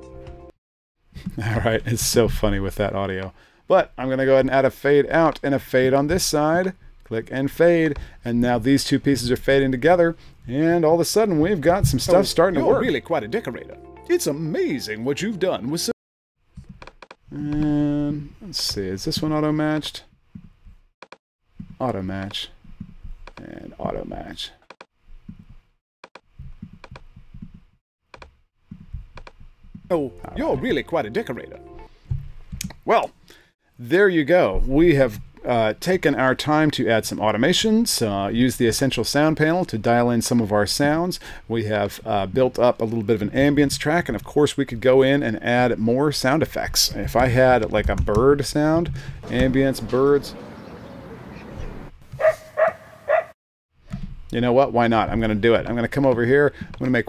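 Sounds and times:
computer mouse clicking: 24.8 - 27.5, 29.1 - 29.4
park ambience hiss: 49.5 - 51.9
distant dog barking: 52.2 - 53.4.

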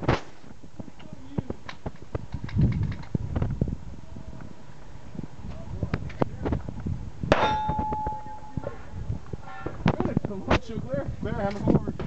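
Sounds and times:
steel target ringing: 7.3 - 8.8.

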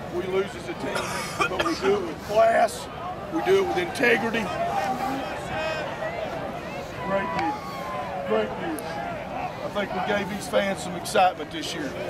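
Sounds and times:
crowd of people talking: 0.0 - 12.0.

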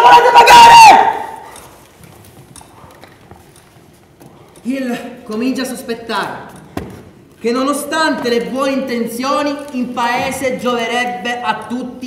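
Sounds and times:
person shouting with hall echo: 0.0 - 1.4
footsteps on wooden stage: 1.4 - 4.7, 6.2 - 7.4.

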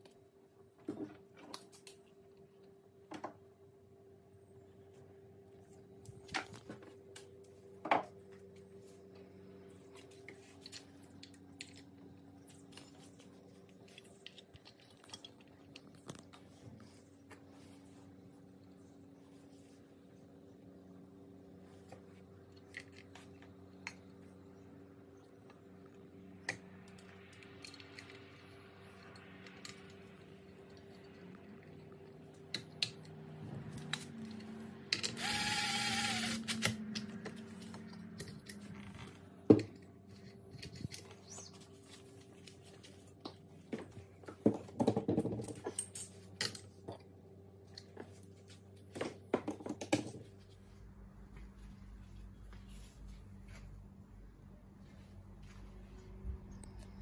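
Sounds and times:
faint steady hum: 0.0 - 57.0.

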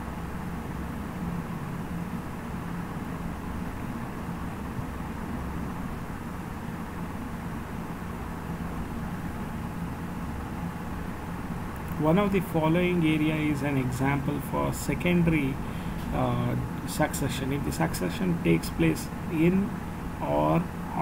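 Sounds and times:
room hum and hiss: 0.0 - 21.0.

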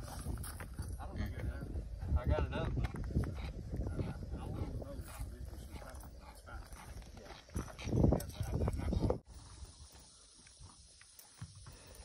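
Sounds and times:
shuffling and crunching on gravel: 0.0 - 3.8.

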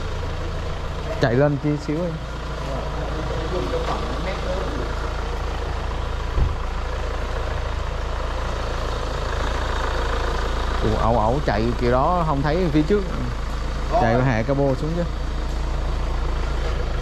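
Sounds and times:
diesel engine idling: 0.0 - 17.0
low thump: 6.3 - 6.6.

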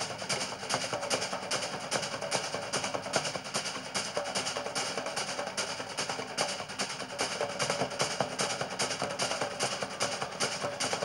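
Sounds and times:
fast drumming: 0.0 - 11.0.

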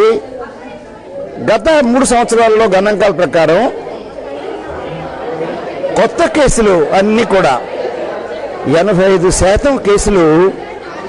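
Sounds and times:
background chatter of people: 0.0 - 11.0
man speaking: 1.4 - 3.8, 4.9 - 7.7, 8.6 - 10.6.

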